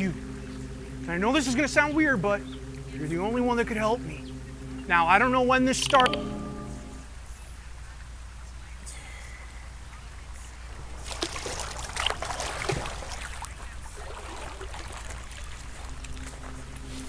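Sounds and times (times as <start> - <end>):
water splashing and sloshing: 10.7 - 16.8.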